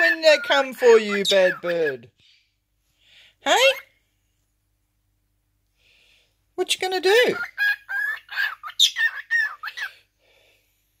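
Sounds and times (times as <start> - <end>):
cockatiel chattering: 0.0 - 2.1, 7.2 - 9.9.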